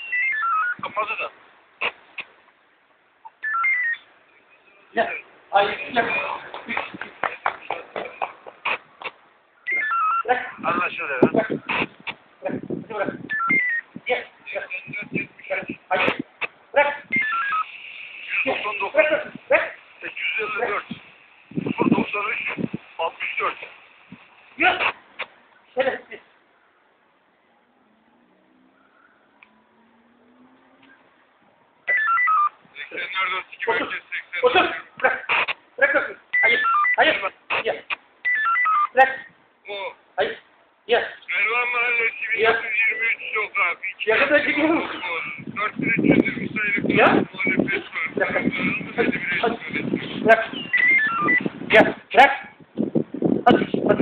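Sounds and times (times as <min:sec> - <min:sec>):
stepped beep tones: 0:00.0 - 0:00.8, 0:03.3 - 0:04.9, 0:09.7 - 0:10.3, 0:13.3 - 0:13.9, 0:17.1 - 0:17.8, 0:31.9 - 0:32.6, 0:36.4 - 0:37.0, 0:38.3 - 0:39.0, 0:50.5 - 0:51.5
voices over radio: 0:00.0 - 0:02.3, 0:03.3 - 0:26.2, 0:31.8 - 0:40.0, 0:40.9 - 0:52.6.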